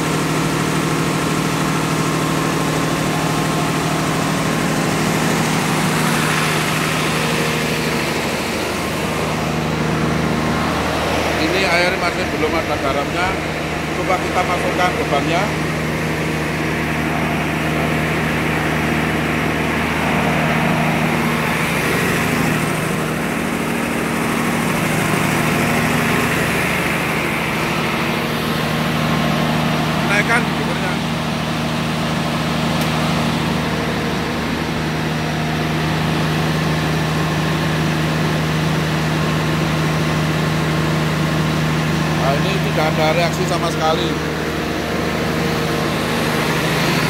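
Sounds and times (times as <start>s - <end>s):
diesel generator engine running: 0.0s - 47.0s.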